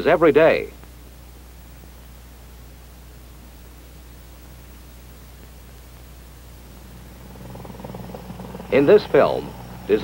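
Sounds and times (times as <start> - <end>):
film soundtrack hum and hiss: 0.0 - 10.0
helicopter rotors chopping: 6.8 - 10.0.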